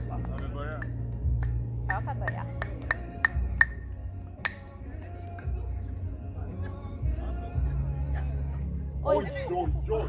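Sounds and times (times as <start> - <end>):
wooden sticks knocking: 0.0 - 4.7.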